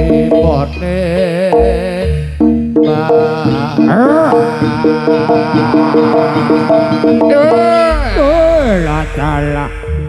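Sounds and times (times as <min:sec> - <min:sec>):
melodic instrument quick stepped notes: 0:00.0 - 0:10.0.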